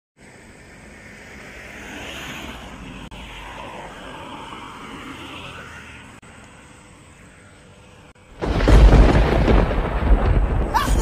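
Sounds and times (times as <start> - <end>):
road traffic rushing: 0.2 - 8.7
wind: 0.2 - 11.0.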